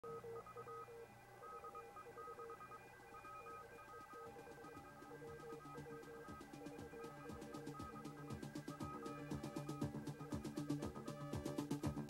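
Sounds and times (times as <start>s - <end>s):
faint electronic beep tones: 0.0s - 10.6s.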